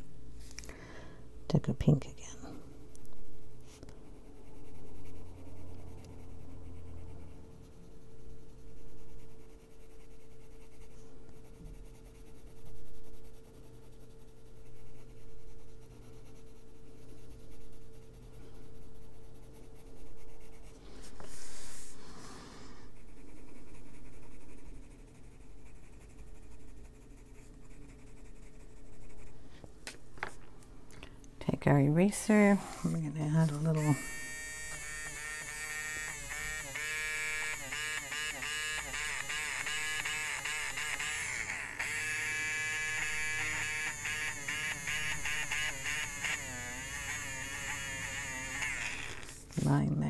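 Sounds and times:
faint steady hum: 0:00.0 - 0:50.0
pencil scratching on paper: 0:02.3 - 0:29.6, 0:32.3 - 0:49.9.

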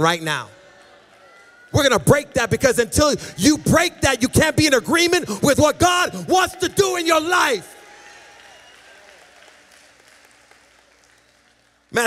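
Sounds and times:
congregation applauding: 0:00.0 - 0:12.0.

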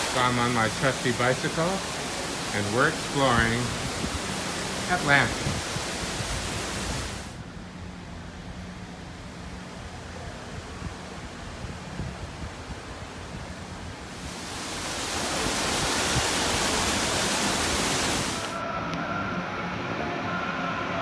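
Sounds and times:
steady rushing noise with rumble: 0:00.0 - 0:18.9.

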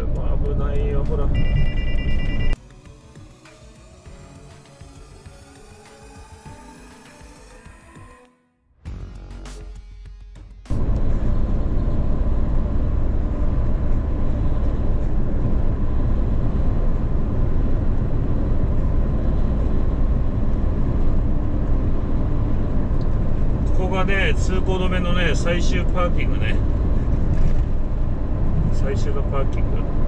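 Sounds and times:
truck engine and road noise: 0:00.0 - 0:07.9, 0:08.9 - 0:30.0.

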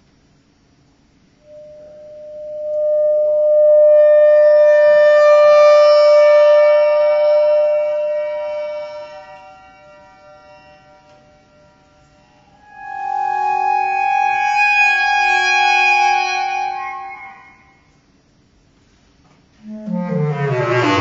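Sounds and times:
bass clarinet long note: 0:01.4 - 0:17.9, 0:19.6 - 0:21.0.

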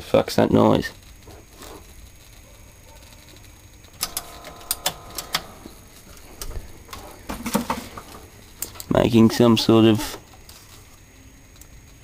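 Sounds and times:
faint steady buzz: 0:00.0 - 0:12.0
television crackling clicks: 0:00.4 - 0:09.0.

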